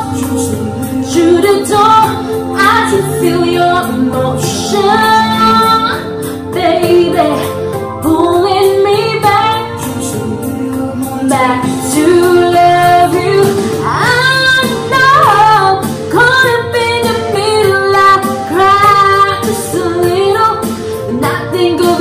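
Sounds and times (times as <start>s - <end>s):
karaoke instrumental backing track: 0.0s - 22.0s
woman singing pop ballad: 0.0s - 22.0s.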